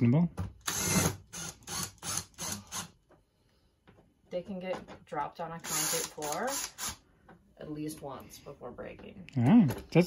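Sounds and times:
cordless drill driving screw: 0.6s - 3.0s, 5.6s - 7.0s.

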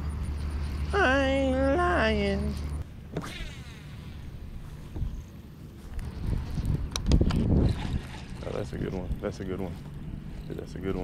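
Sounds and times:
wind rumbling on microphone: 4.3s - 11.0s.

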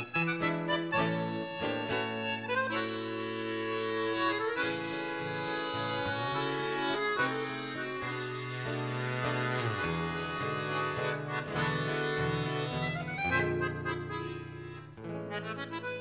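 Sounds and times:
accordion: 0.0s - 16.0s
classical guitar: 0.0s - 16.0s.

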